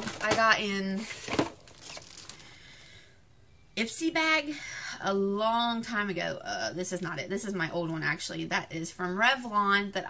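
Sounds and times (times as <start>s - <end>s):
packaging rustling and crinkling: 0.0s - 2.6s.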